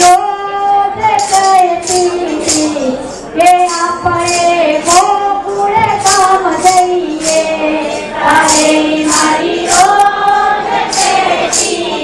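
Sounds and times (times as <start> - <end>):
group singing devotional song: 5.6 - 12.0.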